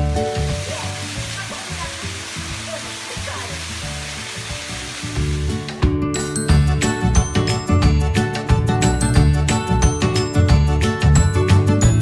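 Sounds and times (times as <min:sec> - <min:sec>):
small waterfall splashing into pool: 0:00.0 - 0:05.8
quiet music: 0:00.0 - 0:12.0.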